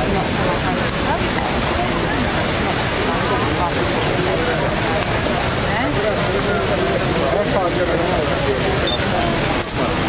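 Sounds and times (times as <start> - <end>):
faint crowd voices: 0.0 - 10.0
fountain water splashing: 0.0 - 10.0.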